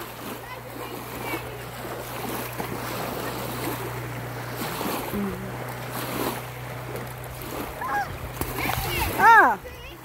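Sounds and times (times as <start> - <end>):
steady low hum: 0.0 - 10.0
water splashing and lapping: 0.0 - 10.0.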